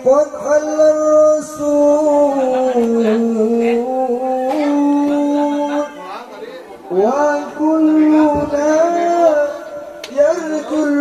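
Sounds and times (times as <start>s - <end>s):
person singing through a sound system: 0.0s - 11.0s.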